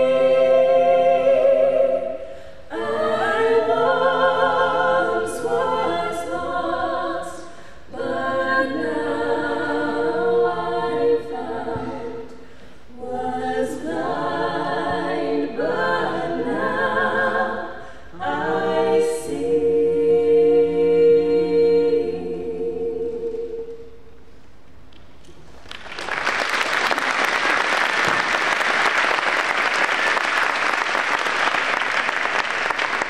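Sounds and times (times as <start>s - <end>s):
women singing a cappella: 0.0s - 24.2s.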